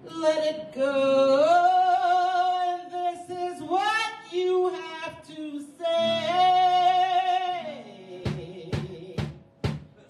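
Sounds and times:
woman singing gospel song: 0.0 - 9.4.

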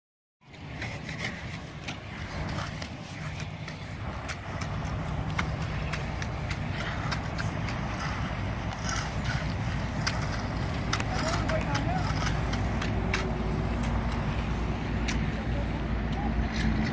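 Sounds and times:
vehicle engine rumbling: 0.6 - 16.9.

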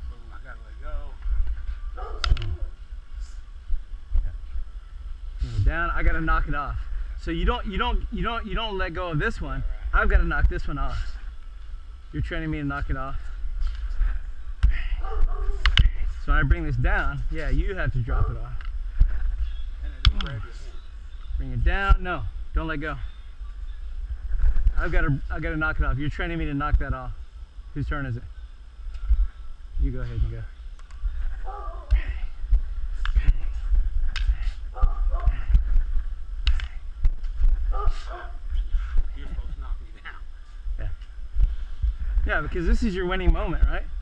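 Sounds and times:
low rumble of movement: 8.0 - 27.6, 28.2 - 44.0.

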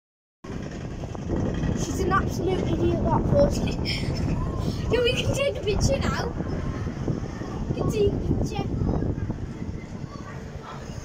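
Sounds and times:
wind buffeting microphone: 0.4 - 11.0.

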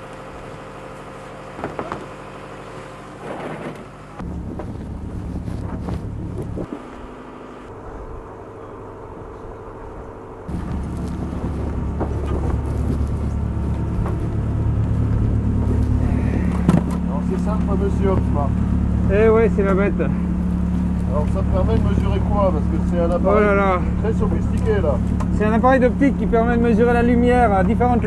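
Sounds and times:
boat engine droning: 0.0 - 28.0.

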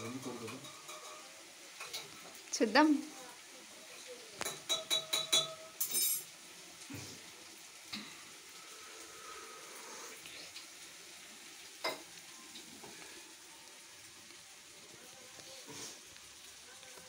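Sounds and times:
chicken sizzling in a pan: 0.0 - 17.0
metal containers clinking: 4.5 - 6.3.

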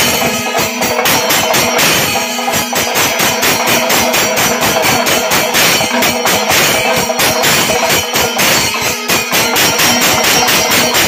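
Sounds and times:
drums struck with sticks: 0.0 - 11.0
hand cymbals clashing: 0.0 - 11.0.

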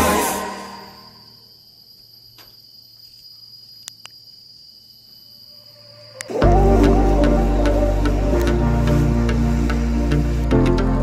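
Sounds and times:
insects droning high-pitched: 0.0 - 11.0.

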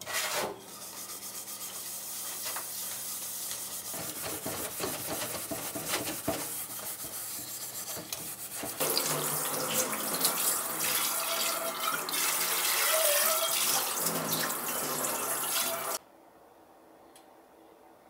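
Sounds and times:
hand scrubbing metal pan: 0.0 - 16.0
tap water running over pan: 2.6 - 16.0.

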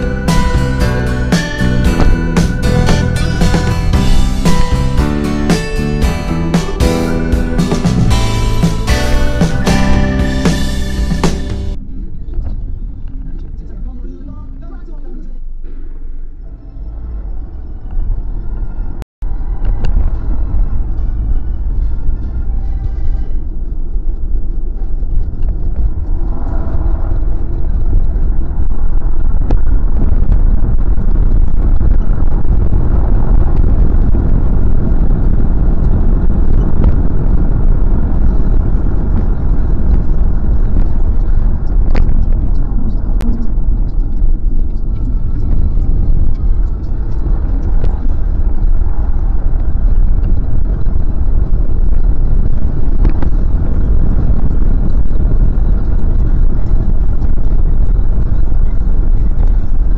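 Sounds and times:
road and engine noise in car: 16.5 - 59.9.

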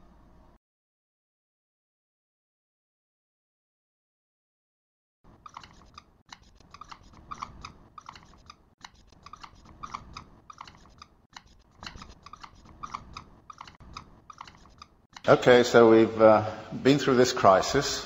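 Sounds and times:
marker scratching on whiteboard: 5.4 - 15.0.

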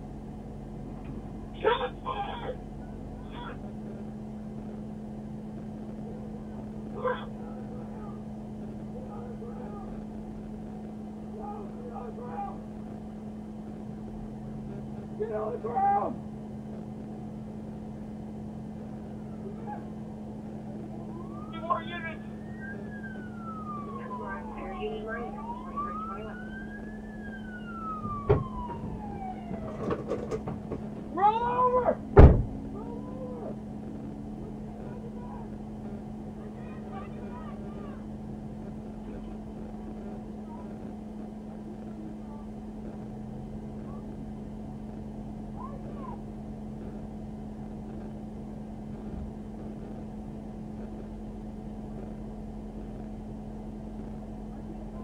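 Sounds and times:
steady low hum: 0.0 - 55.0
police siren wailing: 11.2 - 12.9, 18.9 - 33.7, 36.3 - 38.2
thump: 28.3 - 28.6, 32.2 - 32.6.

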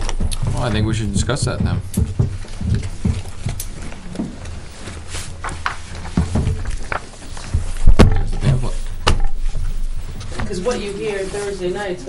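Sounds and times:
low dull thumps and knocks: 0.0 - 11.2
low hum: 0.0 - 12.0.

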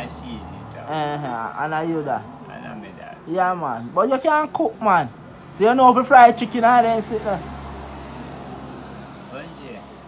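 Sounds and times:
motor vehicle passing: 0.0 - 4.2, 4.9 - 10.0.

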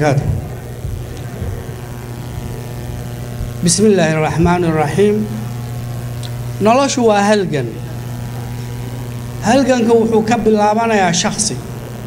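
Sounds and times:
low electrical hum: 0.0 - 12.0
thin buzz: 0.0 - 12.0.

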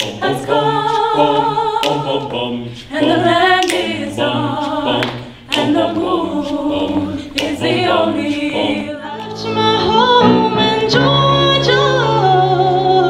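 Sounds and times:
vocal ensemble singing in harmony: 0.0 - 13.0.

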